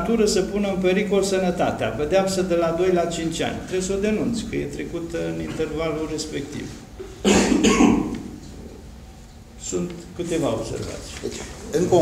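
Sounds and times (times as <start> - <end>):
man coughing: 7.0 - 8.4.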